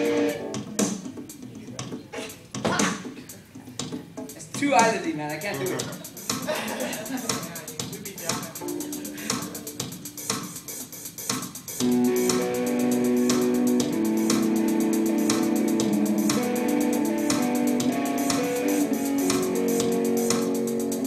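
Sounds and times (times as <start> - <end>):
electric guitar through amp: 0.0 - 0.7, 11.8 - 21.0
programmed rock drum beat: 0.0 - 21.0.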